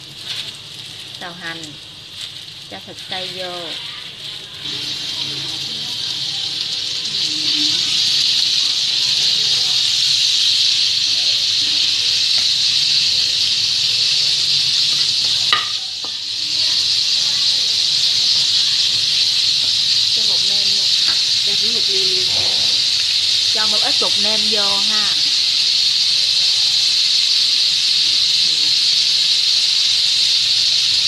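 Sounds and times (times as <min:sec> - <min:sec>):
meat sizzling in hot oil: 0:00.0 - 0:31.0.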